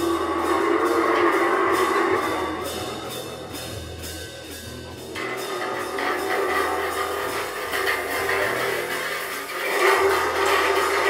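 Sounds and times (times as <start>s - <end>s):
held low bass notes: 0.0s - 11.0s
scratchy cymbal percussion: 0.0s - 11.0s.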